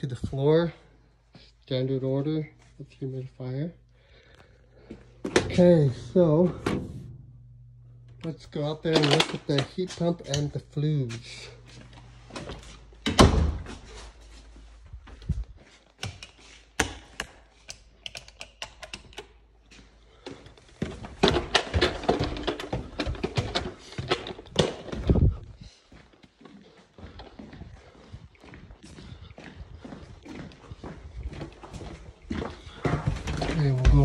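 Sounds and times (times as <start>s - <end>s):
footsteps on wooden stairs: 19.7s - 34.0s.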